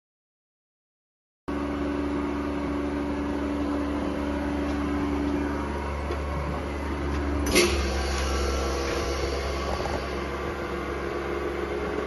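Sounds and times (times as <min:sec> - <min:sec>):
vacuum pump humming: 0:01.5 - 0:12.0.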